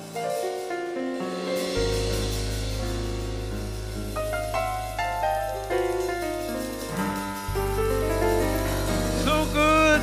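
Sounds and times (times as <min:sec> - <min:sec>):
piano run: 0:00.0 - 0:10.0
held bass note: 0:02.0 - 0:10.0.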